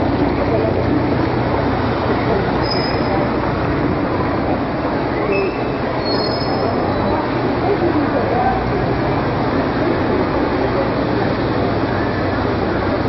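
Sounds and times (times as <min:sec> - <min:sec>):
city street noise: 0:00.0 - 0:13.0
faint high squeals: 0:02.6 - 0:03.2, 0:05.3 - 0:07.2.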